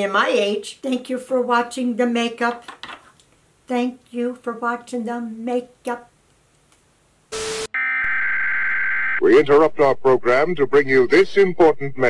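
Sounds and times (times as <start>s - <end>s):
buzzing electronic alert tone: 7.3s - 9.4s
tv static burst: 7.3s - 10.4s.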